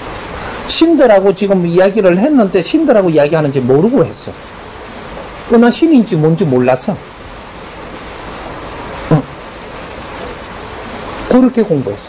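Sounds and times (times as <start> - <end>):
steady rushing noise: 0.0 - 12.0
man's brief vocal sound: 9.1 - 9.4.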